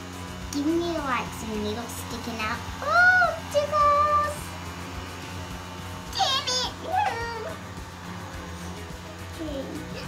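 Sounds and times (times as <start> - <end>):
small fan humming: 0.0 - 10.0.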